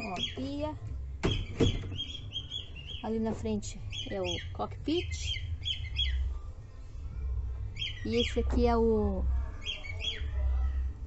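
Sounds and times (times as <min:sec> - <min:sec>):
low steady rumble: 0:00.0 - 0:11.0
small birds chirping: 0:00.0 - 0:11.0
sharp knocks: 0:01.2 - 0:02.2.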